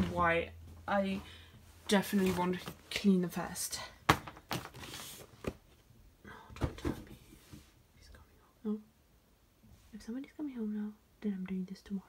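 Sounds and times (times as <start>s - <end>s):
cardboard rustling: 4.1s - 5.8s.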